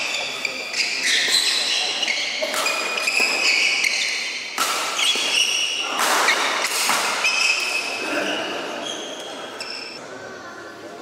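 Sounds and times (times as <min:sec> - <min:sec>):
sports shoes squeaking: 0:00.0 - 0:10.0.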